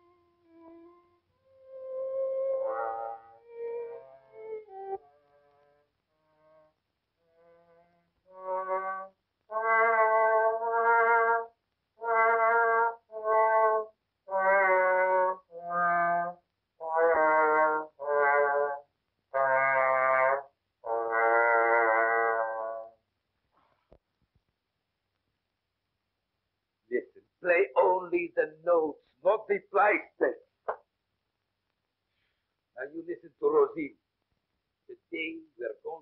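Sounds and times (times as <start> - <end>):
trombone playing slow tune: 0.0 - 4.8, 6.2 - 23.0.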